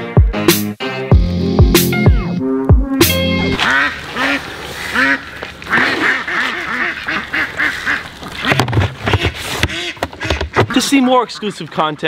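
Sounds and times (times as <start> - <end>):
music with sharp drum hits: 0.2 - 3.3
ducks quacking: 3.4 - 12.0.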